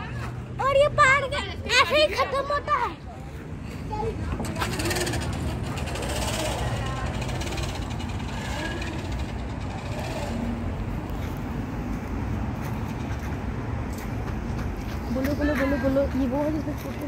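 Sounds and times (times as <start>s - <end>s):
faint voices talking: 0.0s - 13.4s.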